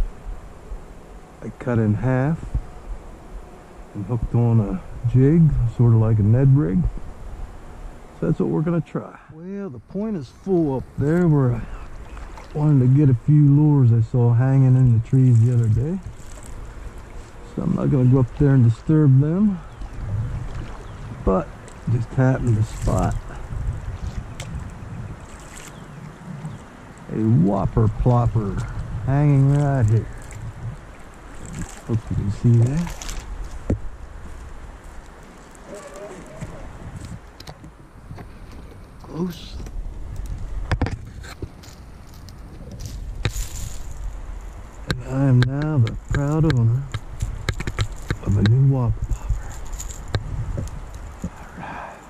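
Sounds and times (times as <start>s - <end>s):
wind rumble on microphone: 0.0s - 8.9s, 9.7s - 52.0s
branches rustling: 10.2s - 13.0s, 14.6s - 27.1s, 28.0s - 52.0s.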